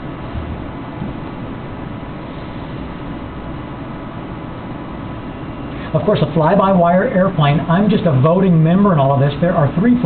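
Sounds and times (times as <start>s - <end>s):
flight simulator rushing rumble: 0.0s - 10.0s.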